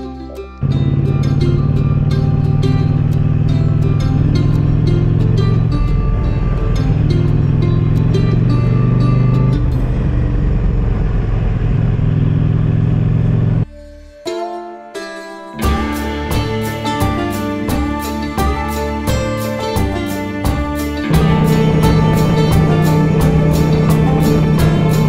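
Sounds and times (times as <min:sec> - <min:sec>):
plucked-string background music: 0:00.0 - 0:12.7, 0:13.4 - 0:25.0
motorcycle engine running: 0:00.6 - 0:13.7, 0:15.6 - 0:25.0.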